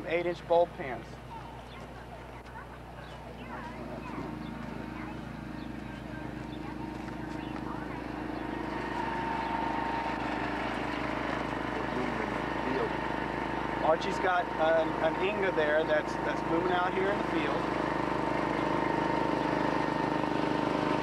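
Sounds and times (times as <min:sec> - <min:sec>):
motor humming steadily: 0:00.0 - 0:21.0.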